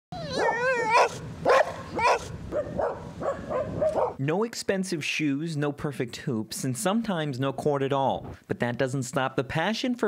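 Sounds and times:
dog barking: 0.3 - 4.2.

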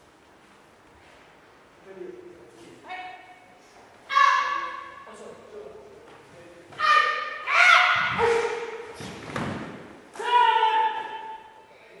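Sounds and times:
person shouting: 4.1 - 5.0, 6.7 - 8.8, 10.2 - 11.5.

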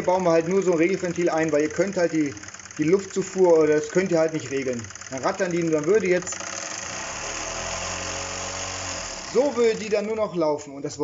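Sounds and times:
model steam engine rattling: 0.0 - 10.4.

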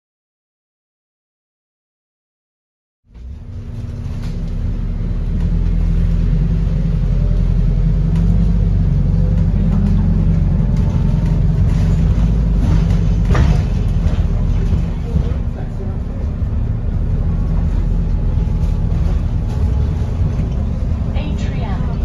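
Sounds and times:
bus cabin drone: 3.1 - 22.0.

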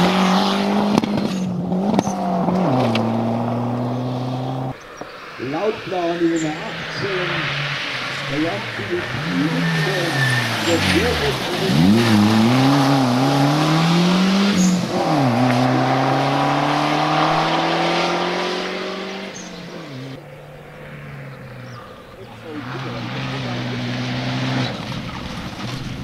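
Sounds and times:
rally car engine revving: 0.0 - 26.0.

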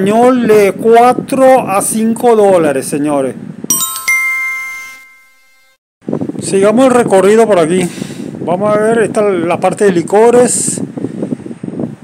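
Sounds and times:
bright bell-like ding: 3.7 - 5.8.

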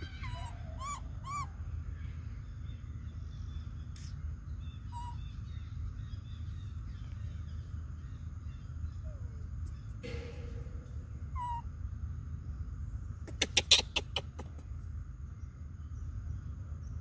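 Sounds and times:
macaque coo calls: 0.0 - 1.6, 4.9 - 5.3, 11.3 - 11.7, 13.3 - 14.6
low rumble: 4.5 - 13.5.

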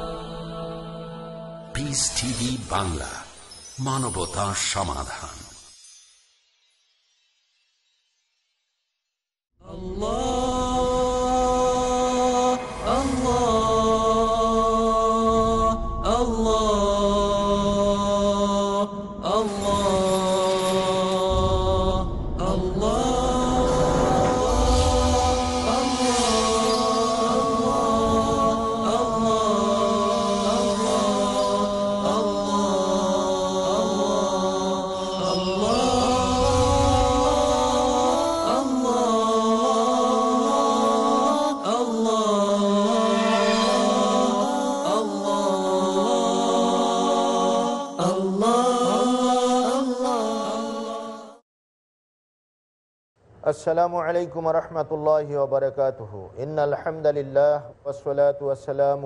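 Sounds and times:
chanted vocals with sliding notes: 0.0 - 5.8, 9.6 - 51.4
low rumble: 9.8 - 33.1.

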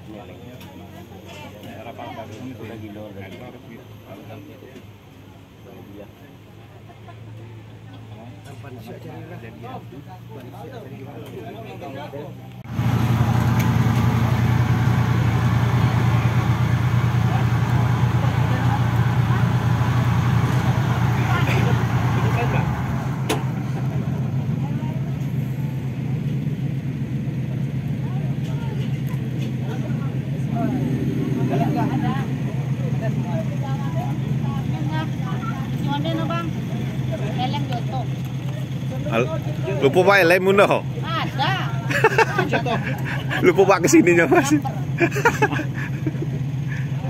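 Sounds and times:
buggy engine idling: 12.4 - 47.0.

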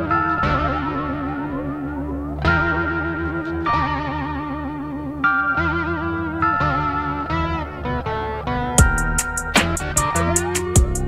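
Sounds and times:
distorted electric guitar: 0.0 - 11.0
programmed beat: 8.8 - 11.0.

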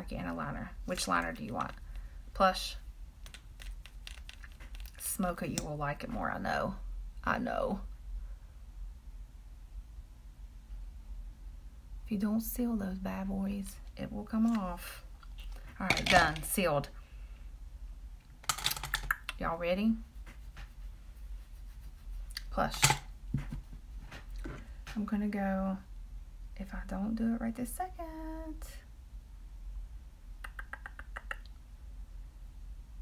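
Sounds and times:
room hum: 0.0 - 33.0
hands handling objects: 3.2 - 5.0
makeup items clicking and rattling: 3.3 - 5.0, 15.3 - 16.6, 18.4 - 19.4, 22.7 - 23.0.

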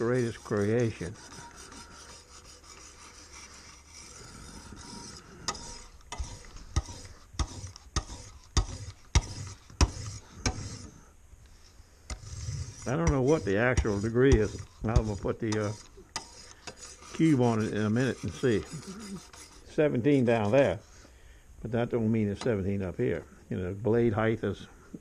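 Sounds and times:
sharpener strokes on knife edge: 0.0 - 11.0, 12.1 - 19.7.

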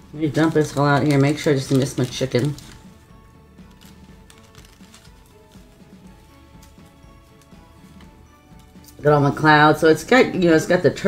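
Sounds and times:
plastic bag crinkling: 0.0 - 9.0
quiet background music: 0.0 - 11.0.

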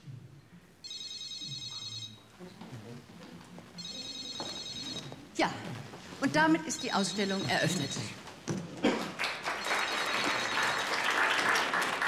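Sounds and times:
phone ringing: 0.8 - 2.3, 3.8 - 5.2, 6.6 - 8.2, 9.6 - 10.9.

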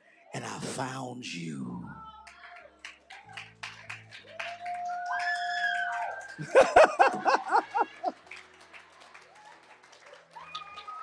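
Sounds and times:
people clapping: 2.1 - 11.0.

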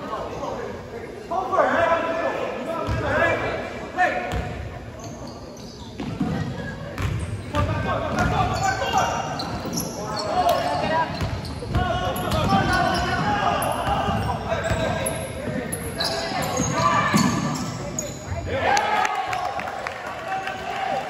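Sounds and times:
sneakers squeaking: 2.8 - 3.2, 4.3 - 18.5.

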